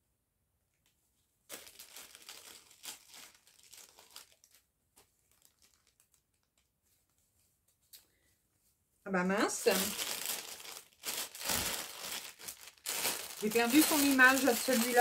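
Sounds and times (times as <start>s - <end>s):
paper and plastic bags rustling: 1.5s - 6.7s, 9.4s - 15.0s.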